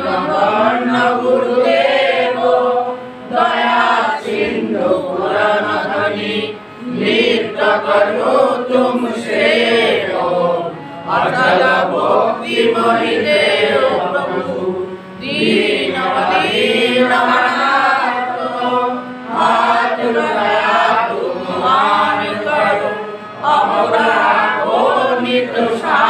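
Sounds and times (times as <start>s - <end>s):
group chanting prayer: 0.0s - 26.0s.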